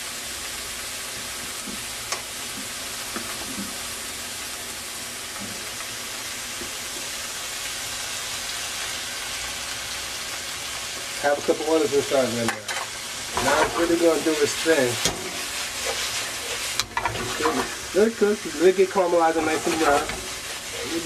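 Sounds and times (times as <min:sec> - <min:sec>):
vegetables sizzling in oil: 0:00.0 - 0:21.0.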